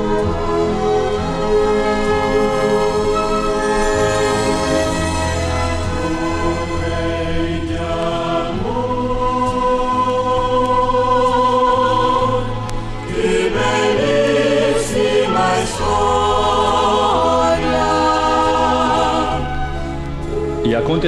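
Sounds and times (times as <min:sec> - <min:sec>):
choral music: 0:00.0 - 0:21.0.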